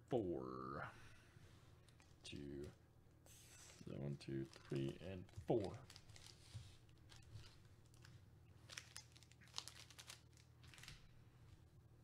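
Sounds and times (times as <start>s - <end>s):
low room hum: 0.0s - 12.0s
foil wrappers crinkling: 3.7s - 11.1s.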